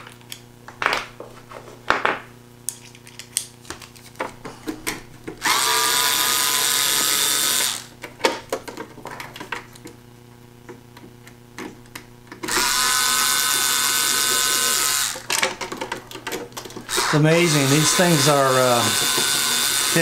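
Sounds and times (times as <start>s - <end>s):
power screwdriver whine: 5.4s - 7.9s, 12.4s - 15.3s, 16.9s - 20.0s.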